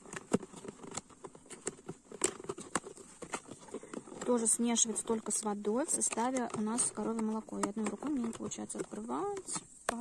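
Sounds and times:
cardboard rustling: 0.0 - 10.0
fingers tapping cardboard box: 0.0 - 10.0.

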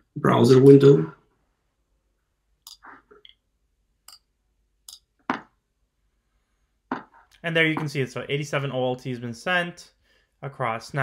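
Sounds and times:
knocks: 5.3 - 5.6, 6.9 - 8.0.

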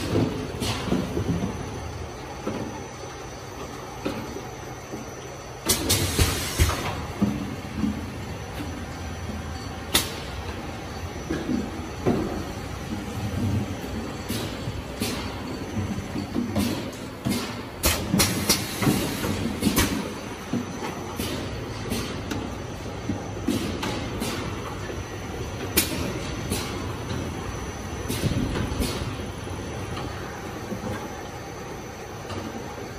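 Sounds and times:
machinery clacking and knocking: 5.7 - 32.9.

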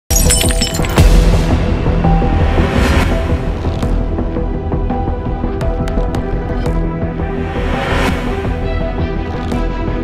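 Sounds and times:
glassy shattering clicks: 0.1 - 1.0
dramatic news music: 0.8 - 10.0.

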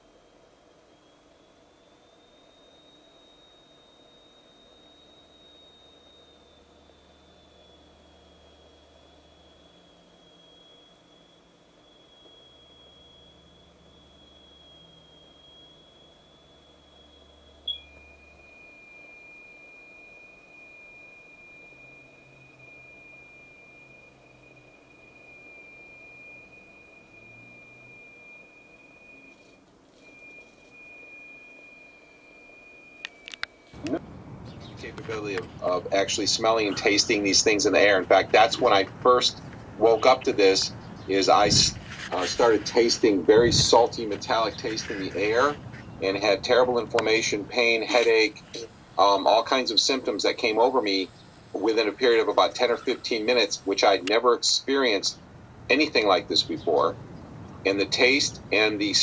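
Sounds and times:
high pure test tone: 0.0 - 59.0.

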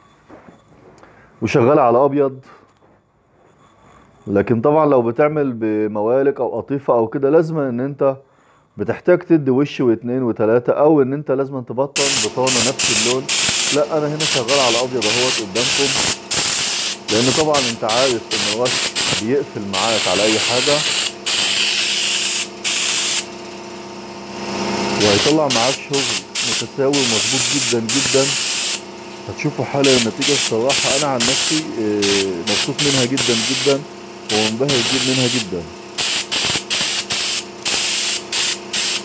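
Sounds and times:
spray gun hissing: 12.0 - 23.3, 25.0 - 28.8, 29.8 - 39.0
spray gun trigger: 12.0 - 23.4, 25.0 - 28.8, 29.8 - 39.0
steady hum: 12.0 - 39.0.

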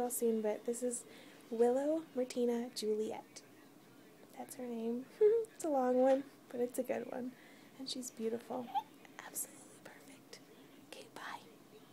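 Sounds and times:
woman whispering: 8.6 - 11.6.

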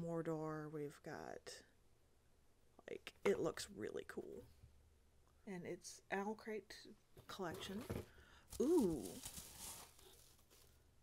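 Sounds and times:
packing wrap crinkling: 8.5 - 10.8.

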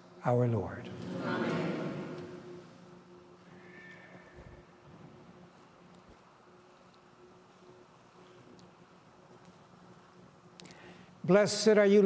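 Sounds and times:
steady low hum: 0.0 - 12.0
faint squeak: 3.5 - 4.6.

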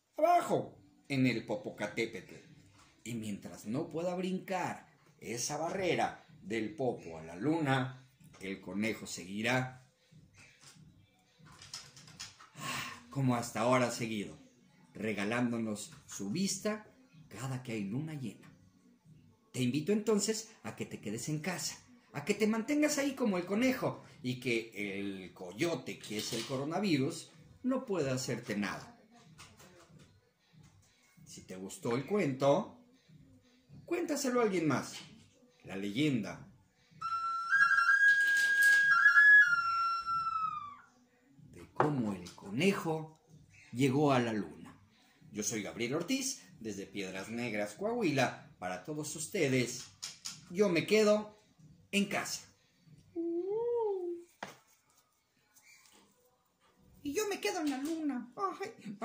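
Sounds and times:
whistle flute phrase with trills: 37.0 - 40.9.

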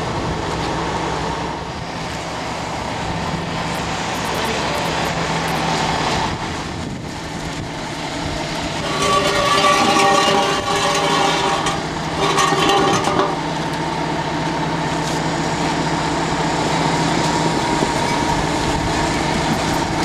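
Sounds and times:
crane droning whine: 0.0 - 20.0
truck engine running: 0.0 - 20.0.

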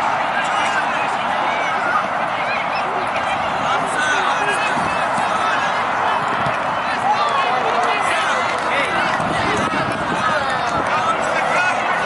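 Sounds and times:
spectators calling: 0.0 - 12.0
young players shouting: 0.0 - 12.0.

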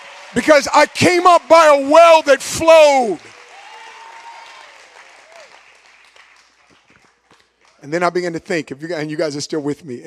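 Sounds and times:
audience applauding: 0.0 - 7.9.

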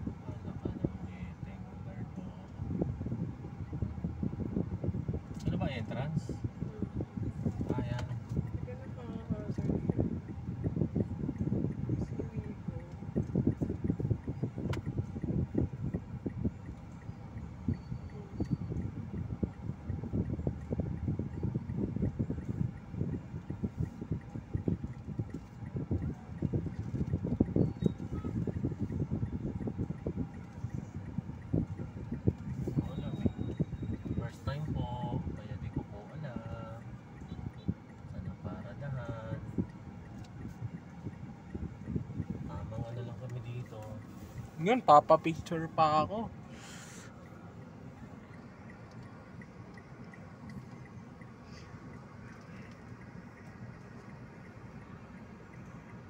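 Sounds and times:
low rumble inside car: 0.0 - 56.0.

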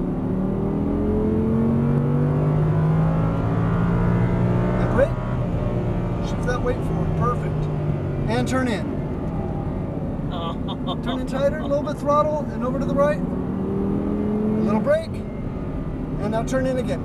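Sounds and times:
car engine at full throttle: 0.0 - 17.0.

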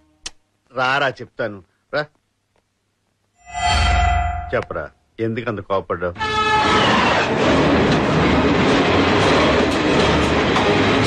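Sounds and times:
train passing on rails: 6.7 - 11.0.

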